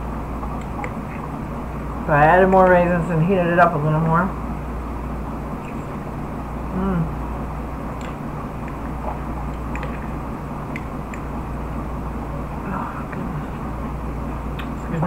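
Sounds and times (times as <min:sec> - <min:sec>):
background hum and hiss: 0:00.0 - 0:15.0
person humming: 0:06.7 - 0:07.2, 0:12.6 - 0:13.6.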